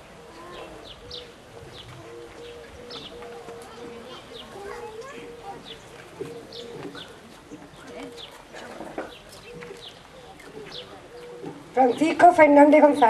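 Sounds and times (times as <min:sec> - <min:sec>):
dove cooing: 0:00.0 - 0:13.0.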